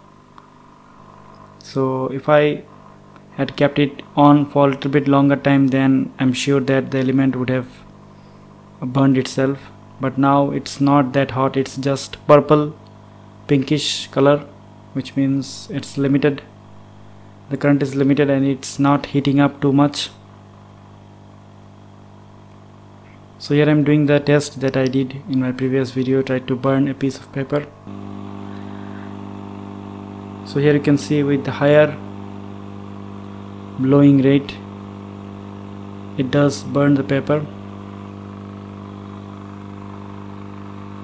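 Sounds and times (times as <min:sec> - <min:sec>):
hot-air gun blower fan humming: 0:00.0 - 0:41.0.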